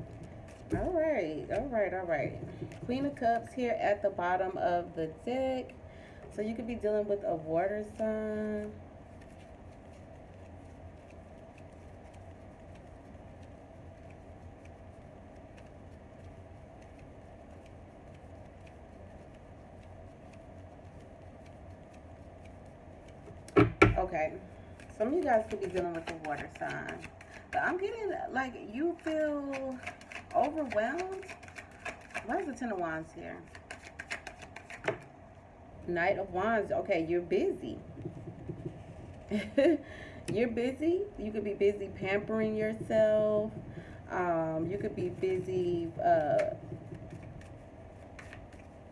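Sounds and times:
cards being shuffled: 0.0 - 1.8, 7.9 - 24.0, 24.8 - 28.0, 28.9 - 32.8, 33.4 - 35.1, 44.8 - 48.9
low room hum: 0.0 - 48.9
cards knocking on stone tabletop: 23.5 - 24.0, 33.5 - 35.1, 37.8 - 39.2.

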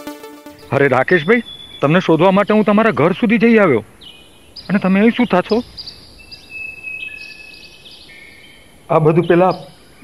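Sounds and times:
faint outdoor background noise: 0.5 - 10.0
man speaking: 0.7 - 3.8, 4.7 - 5.7, 8.9 - 9.7
crickets chirping: 3.9 - 10.0.

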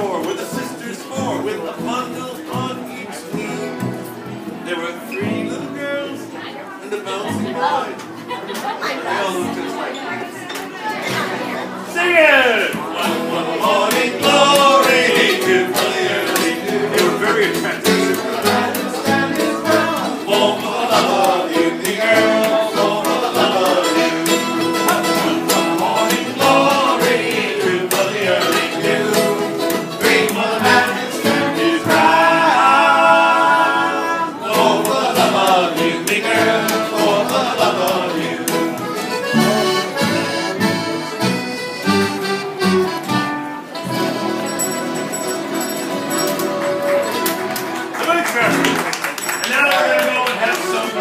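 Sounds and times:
strummed acoustic guitar: 0.0 - 51.0
plucked upright bass: 12.8 - 47.7
accordion melody: 12.8 - 48.8.

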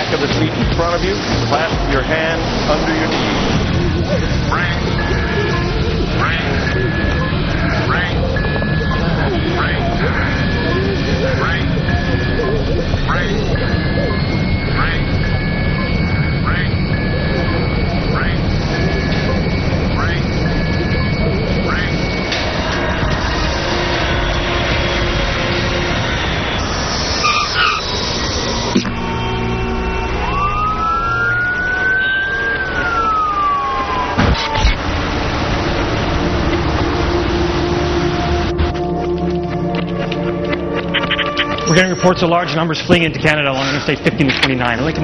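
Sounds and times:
dramatic music: 0.0 - 45.0
electronic beeping alarm: 0.0 - 45.0
heavy low rumble: 0.0 - 45.0
siren wail: 0.0 - 45.0.

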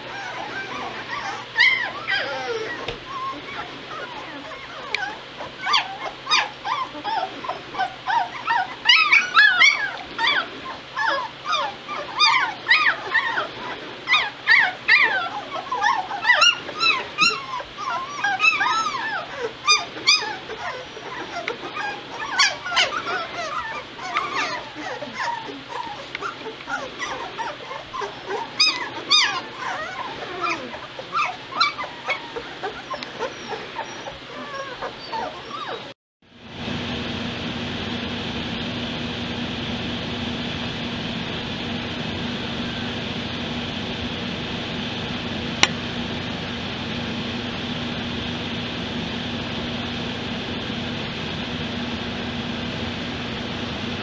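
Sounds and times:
puppies whimpering and squeaking: 0.0 - 36.0.

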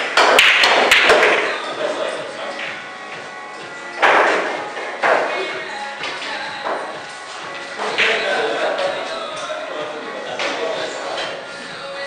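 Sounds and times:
pool balls clacking: 0.0 - 9.6, 10.3 - 11.5.

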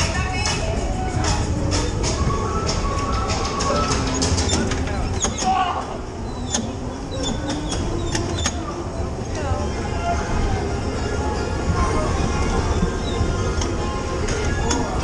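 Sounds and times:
fairground music: 0.0 - 4.9
voices: 0.0 - 7.1, 7.7 - 15.0
bumper cars rumbling: 0.0 - 15.0.

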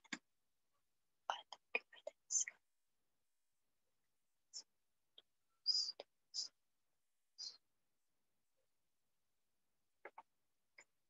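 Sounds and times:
person whispering: 1.3 - 2.6, 5.7 - 6.6.

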